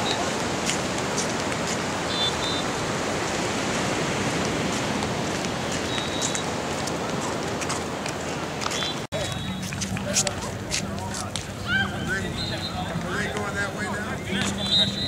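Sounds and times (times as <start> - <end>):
steady rushing outdoor noise: 0.0 - 15.0
indistinct voices of people: 8.6 - 15.0.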